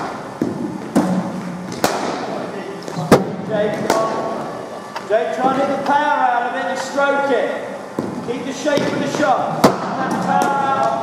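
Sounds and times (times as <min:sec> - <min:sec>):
cricket balls striking in hall: 0:00.0 - 0:06.0, 0:07.9 - 0:11.0.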